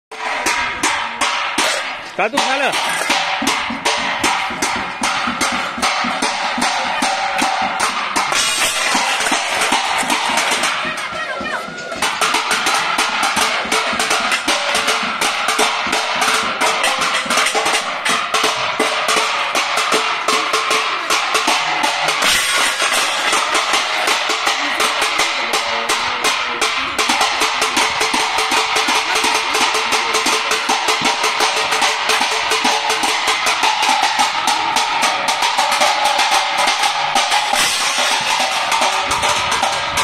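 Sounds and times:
metal clanging: 0.1s - 40.0s
metal dish beaten with utensil: 0.1s - 40.0s.

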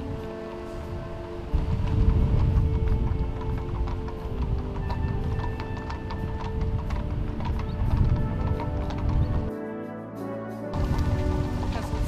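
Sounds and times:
horse hooves clip-clopping on pavement: 0.0s - 9.5s, 10.7s - 12.0s
music with long held notes: 0.0s - 12.0s.

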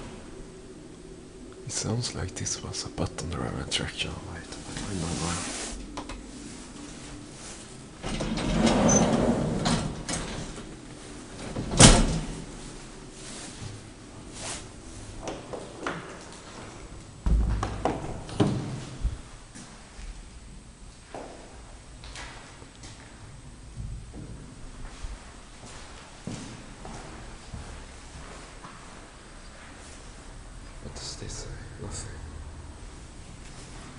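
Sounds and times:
elevator doors sliding rumble: 0.0s - 15.4s.

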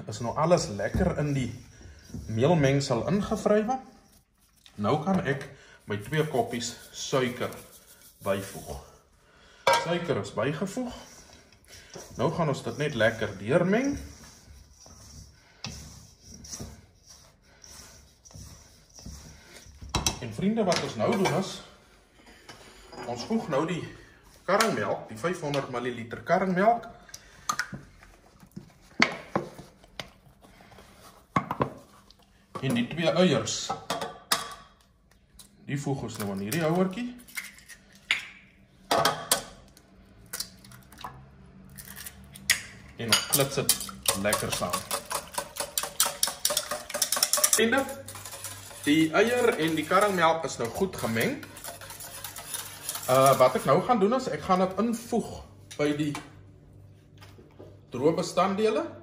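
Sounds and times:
spatula scraping mixing bowl: 0.0s - 9.1s, 9.7s - 23.8s, 43.0s - 55.2s.

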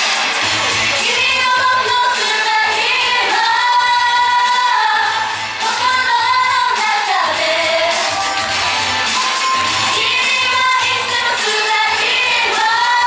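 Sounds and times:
pop backing track with kick drum: 0.0s - 13.0s
female vocal group singing: 0.9s - 8.2s, 9.8s - 13.0s.

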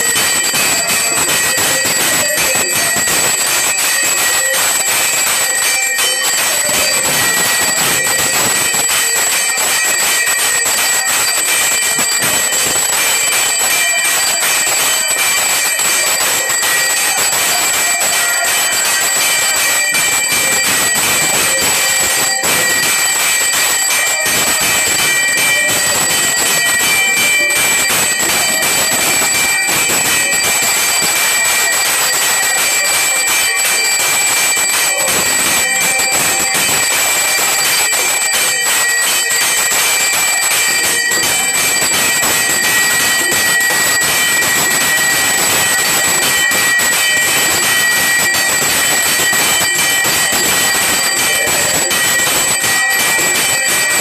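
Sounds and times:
temple bells and gongs clanging: 0.0s - 54.0s.

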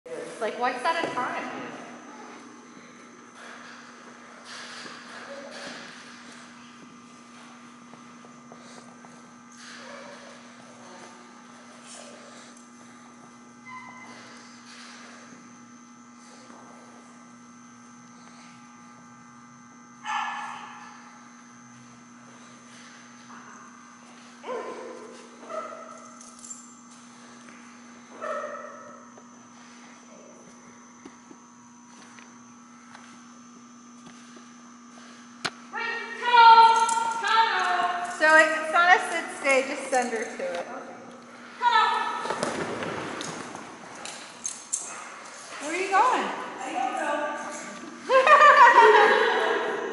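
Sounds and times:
electrical hum: 0.1s - 49.9s
dog barking: 20.0s - 20.7s, 24.4s - 26.0s, 28.2s - 28.9s.

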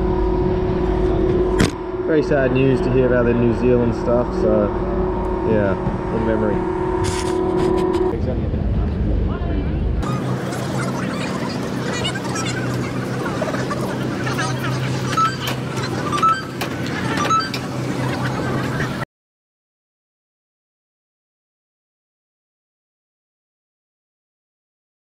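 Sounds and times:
low rumble: 0.0s - 16.1s
steady low hum: 0.0s - 19.0s
crowd talking: 0.9s - 19.0s.

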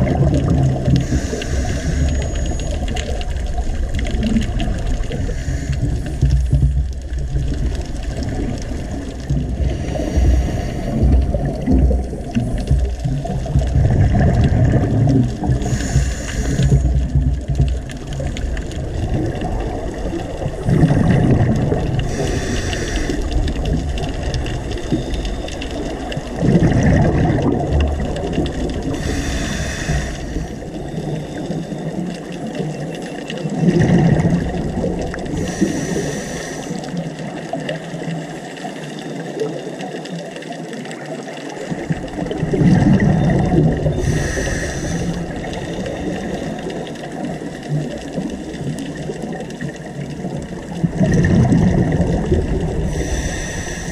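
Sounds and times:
exhaled bubbles rumbling: 0.0s - 53.9s
underwater noise: 0.0s - 53.9s
regulator inhalation hiss: 1.0s - 2.5s, 5.2s - 6.2s, 15.6s - 16.9s, 22.1s - 23.4s, 29.0s - 30.6s, 35.4s - 37.0s, 44.0s - 45.4s, 52.9s - 53.9s.

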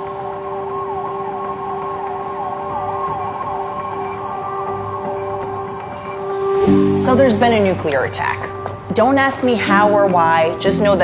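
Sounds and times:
emergency siren warbling: 0.0s - 7.7s
droning music: 0.0s - 11.0s.

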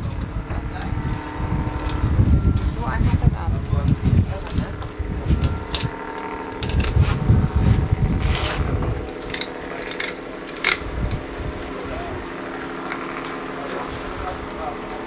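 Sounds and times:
steady low hum: 0.0s - 15.0s
wind rumbling on microphone: 0.0s - 15.0s
sharp clicks: 9.1s - 11.2s.

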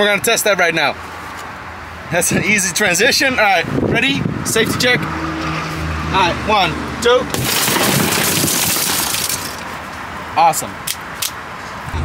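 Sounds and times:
car window glass shattering: 7.3s - 9.6s.

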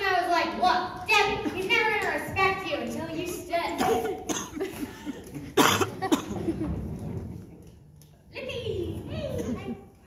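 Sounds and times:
person coughing: 3.8s - 6.5s.

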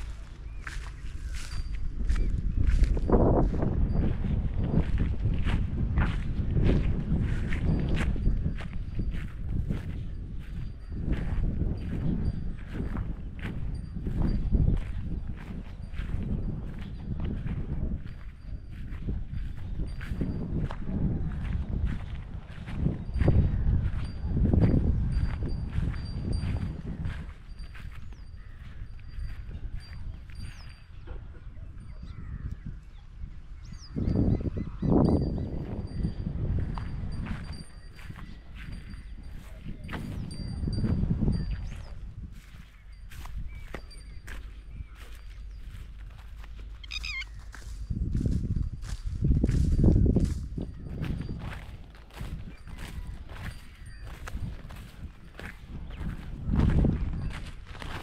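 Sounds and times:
footsteps crunching through straw: 0.0s - 30.7s, 36.6s - 58.0s.

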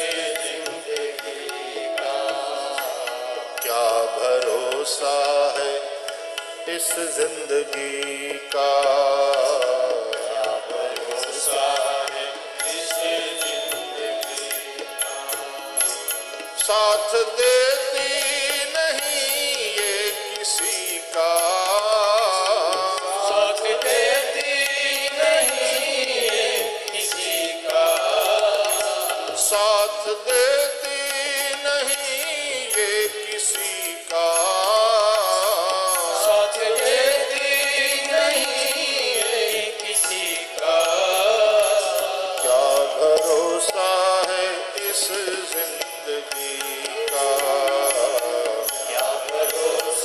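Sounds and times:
men singing devotional song: 0.0s - 50.0s
musical accompaniment: 0.0s - 50.0s.

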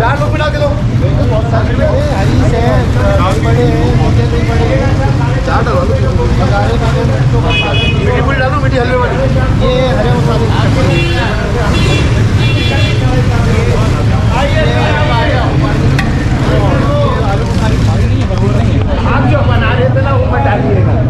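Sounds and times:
people talking: 0.0s - 21.0s
traffic noise: 0.0s - 21.0s
vehicle engine rumble: 0.0s - 21.0s.

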